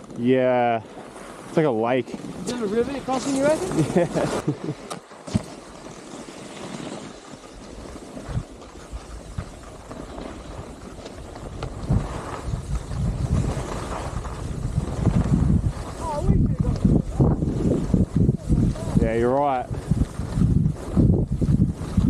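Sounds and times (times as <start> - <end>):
skis sliding over snow: 0.0 - 22.0
wind buffeting microphone: 7.0 - 22.0.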